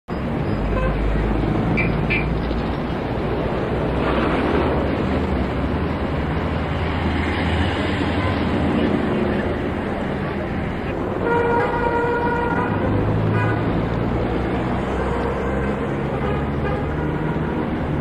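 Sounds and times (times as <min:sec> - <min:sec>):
traffic rumble: 0:00.1 - 0:18.0.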